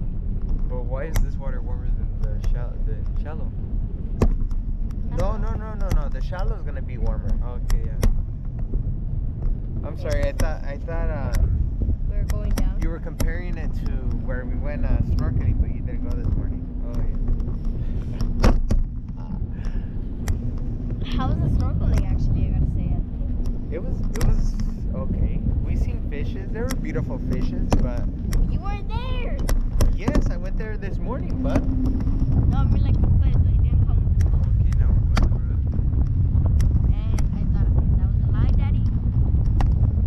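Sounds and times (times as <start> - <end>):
steady low hum: 0.0 - 40.0
wind rumbling over microphone: 0.0 - 40.0.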